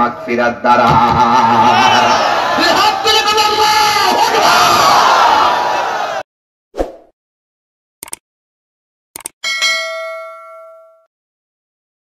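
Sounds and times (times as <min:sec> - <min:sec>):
bell ding: 0:09.4 - 0:11.1.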